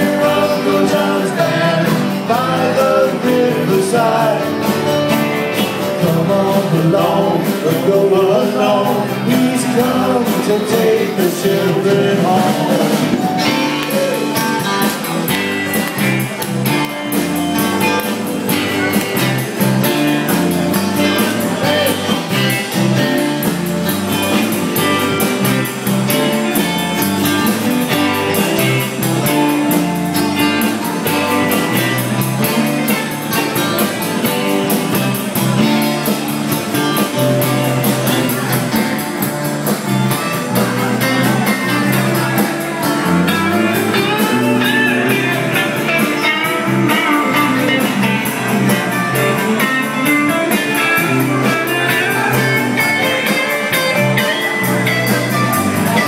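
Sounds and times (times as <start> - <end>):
live rock band playing: 0.0 - 56.0.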